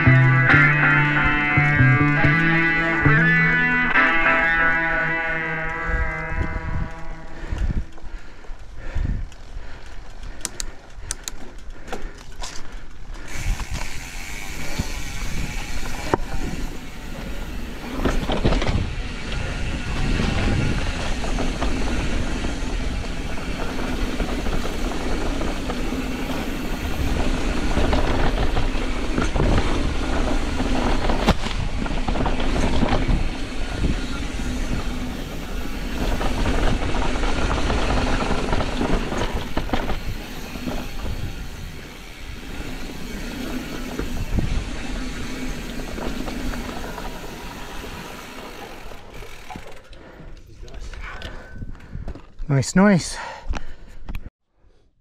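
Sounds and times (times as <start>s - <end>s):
bike rattling: 0.0s - 52.5s
tyre noise on dirt: 13.3s - 49.8s
wind across microphone: 17.5s - 48.1s, 50.6s - 52.4s.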